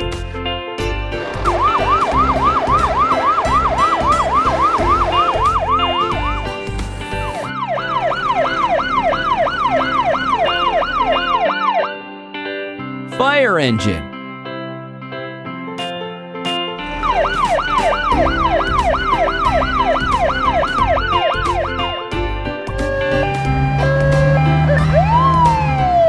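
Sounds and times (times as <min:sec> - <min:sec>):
cheerful background music: 0:00.0 - 0:11.8, 0:13.1 - 0:14.1
cartoon fire truck siren: 0:01.5 - 0:06.4, 0:07.3 - 0:11.9, 0:17.0 - 0:22.0, 0:22.8 - 0:26.0.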